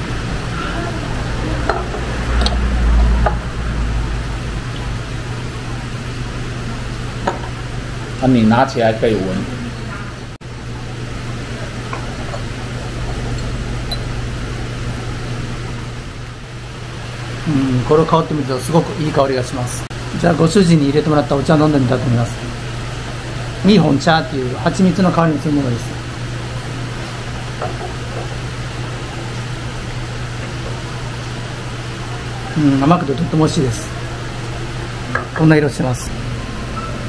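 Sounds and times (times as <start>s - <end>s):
fan machine humming: 0.0s - 37.0s.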